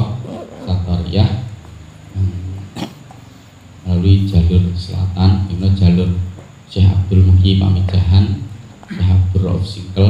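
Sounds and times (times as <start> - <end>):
man speaking into a microphone: 0.0 - 1.6, 3.8 - 10.0.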